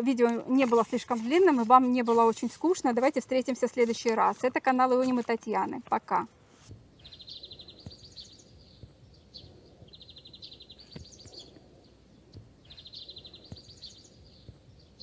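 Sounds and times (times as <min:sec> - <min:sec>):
faint background noise: 0:00.0 - 0:15.0
small bird singing: 0:06.9 - 0:15.0.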